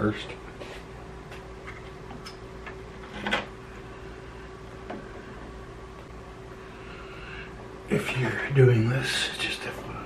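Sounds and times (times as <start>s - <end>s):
steady faint hum: 0.0s - 10.0s.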